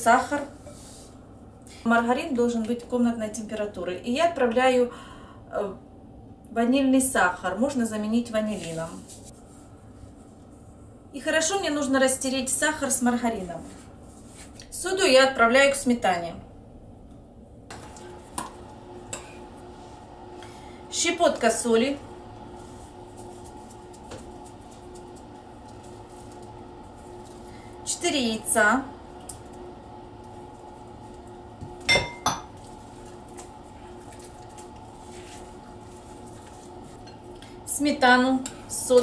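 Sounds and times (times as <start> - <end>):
faint steady hum: 0.0 - 39.0
metal spoon clinking glass bowl: 31.9 - 32.5.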